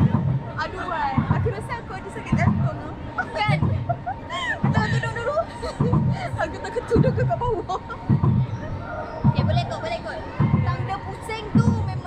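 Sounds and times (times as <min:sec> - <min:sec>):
low heavy clunk: 0:00.0 - 0:09.7
faint voices: 0:00.0 - 0:12.0
roller coaster car running: 0:00.0 - 0:12.0.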